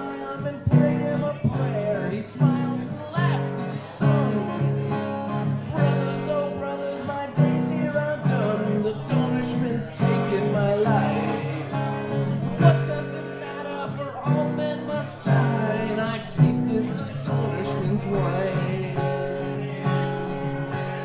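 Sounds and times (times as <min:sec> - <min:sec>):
acoustic guitar: 0:00.0 - 0:21.0
man singing: 0:00.0 - 0:21.0.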